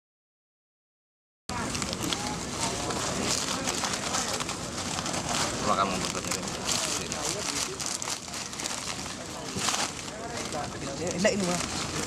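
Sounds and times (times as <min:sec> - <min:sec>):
indistinct chatter of people: 0:01.5 - 0:12.0.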